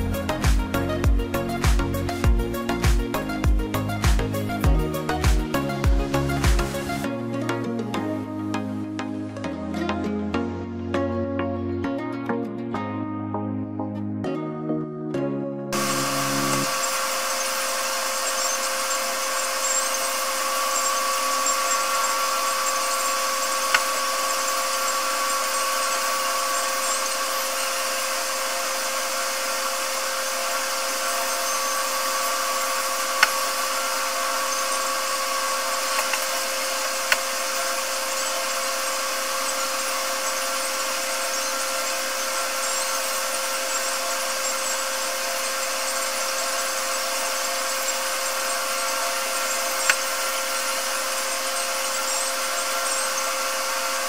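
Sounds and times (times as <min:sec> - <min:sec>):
small motor whining: 0:15.8 - 0:54.0.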